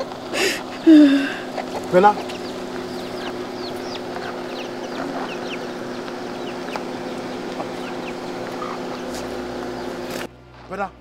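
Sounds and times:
chickens clucking: 0.0 - 10.3
birds chirping: 0.0 - 10.9
steady low hum: 0.0 - 11.0.

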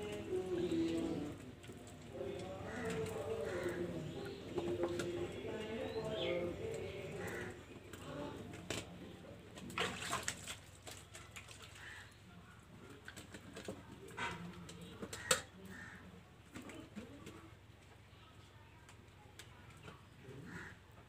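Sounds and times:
pigeons cooing: 0.0 - 9.8.

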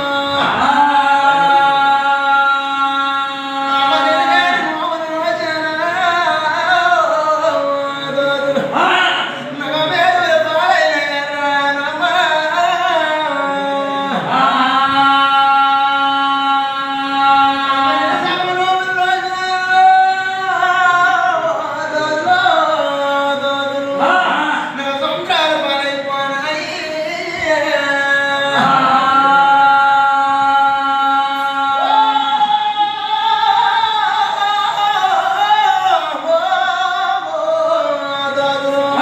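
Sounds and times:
man singing long note: 0.0 - 25.1, 26.1 - 39.0.

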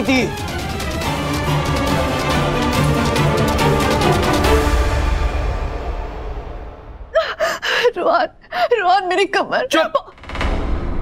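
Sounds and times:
woman sobbing: 7.1 - 9.0.

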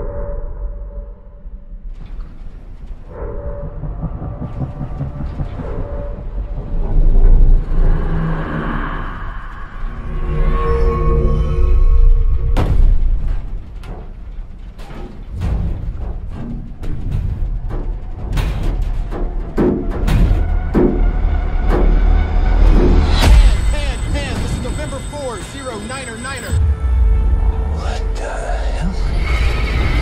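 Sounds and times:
plane engines rumbling: 3.0 - 12.6, 20.6 - 30.0.

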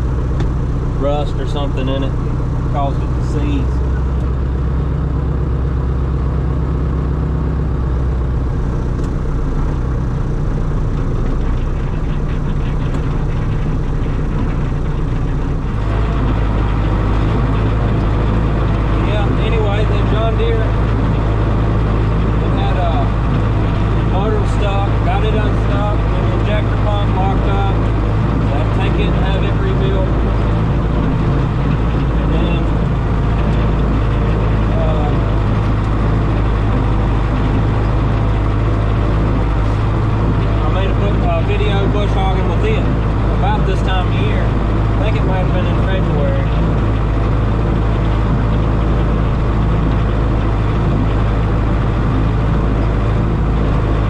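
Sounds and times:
tractor diesel engine running: 0.0 - 54.0.

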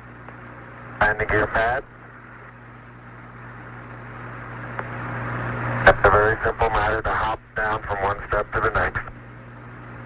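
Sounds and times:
radio hiss and hum: 0.0 - 10.0.

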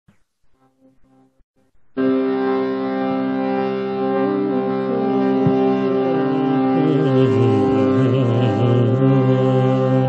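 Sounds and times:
instrumental drone: 1.9 - 10.0.

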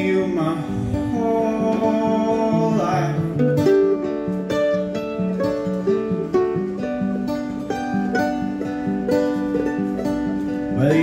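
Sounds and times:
acoustic guitar playing: 0.0 - 11.0
mandolin playing: 0.0 - 11.0.

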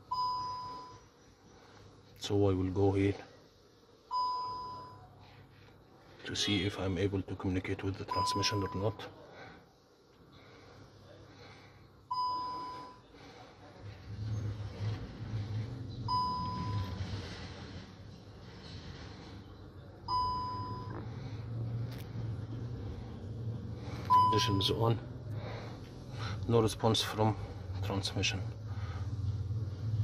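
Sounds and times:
low steady hum: 0.0 - 30.0
car electronic warning beep: 0.1 - 1.0, 4.1 - 5.1, 8.1 - 9.0, 12.1 - 13.0, 16.0 - 17.0, 20.1 - 21.0, 24.1 - 24.8.

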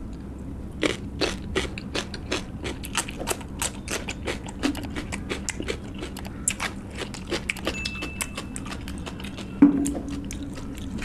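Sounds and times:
crunching cucumber being chewed: 0.8 - 11.0.

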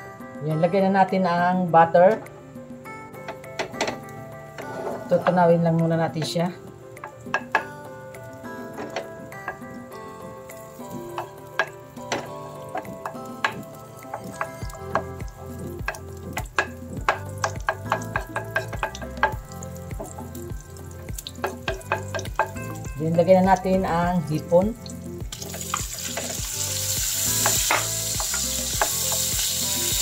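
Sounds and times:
background music with a beat: 2.2 - 5.1, 6.6 - 30.0
wooden spoon tapping a pan: 7.0 - 7.7, 8.8 - 9.6, 11.1 - 20.4, 21.1 - 22.6, 27.4 - 29.3
butter sizzling in a frying pan: 24.7 - 30.0.

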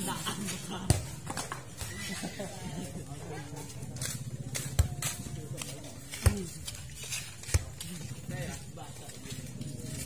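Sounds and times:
people calling out and chattering: 0.0 - 10.0.

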